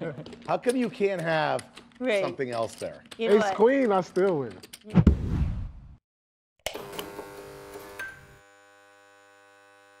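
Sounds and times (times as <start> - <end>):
electronic hum of held tones: 6.7 - 10.0.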